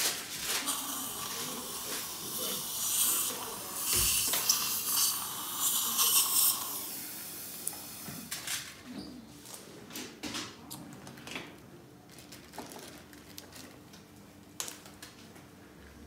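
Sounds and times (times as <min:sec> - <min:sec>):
dental suction hissing and slurping: 0:00.6 - 0:08.1.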